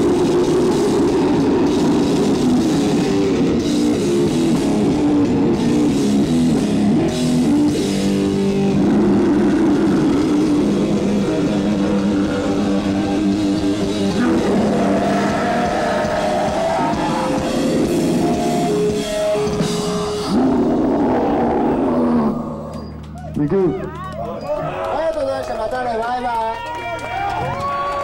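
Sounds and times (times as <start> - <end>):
metal band playing live: 0.0 - 23.2.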